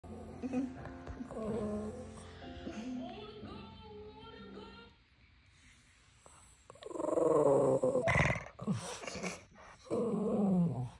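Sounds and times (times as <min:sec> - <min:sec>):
dog grumbling: 0:00.1 - 0:02.2, 0:06.7 - 0:10.9.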